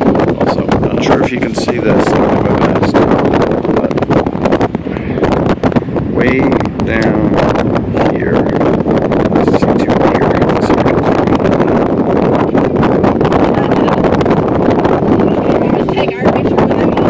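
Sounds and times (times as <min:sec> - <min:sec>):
strong wind buffeting microphone: 0:00.0 - 0:17.0.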